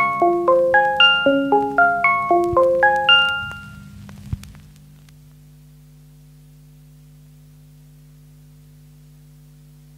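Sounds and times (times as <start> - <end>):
record music ringing notes: 0.0 - 5.0
turntable low hum: 0.0 - 9.9.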